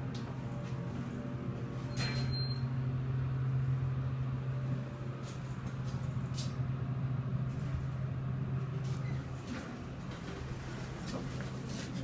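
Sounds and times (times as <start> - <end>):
elevator low hum: 0.0 - 12.0.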